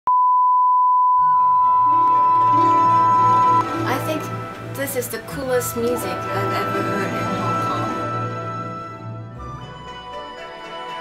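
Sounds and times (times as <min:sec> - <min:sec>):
test tone beep: 0:00.1 - 0:04.4
music: 0:01.2 - 0:11.0.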